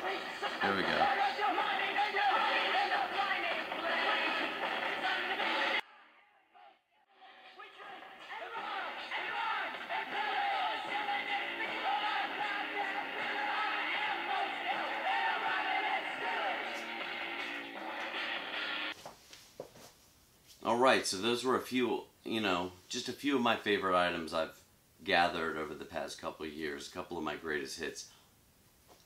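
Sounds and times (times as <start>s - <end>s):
music from small speaker: 0.0s - 5.8s, 7.3s - 19.0s
voice singing and talking: 0.0s - 5.8s, 7.6s - 17.4s.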